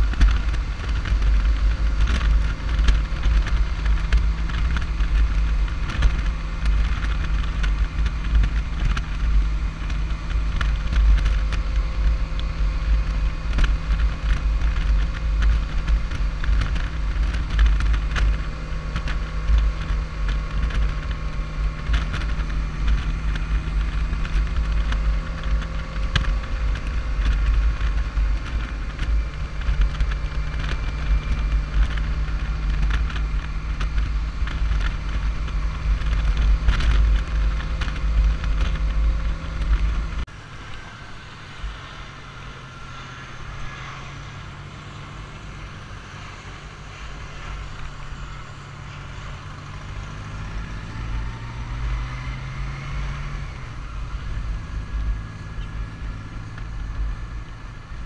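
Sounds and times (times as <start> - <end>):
motorcycle engine: 0.0 - 58.0
wind rumble on microphone: 0.0 - 58.0.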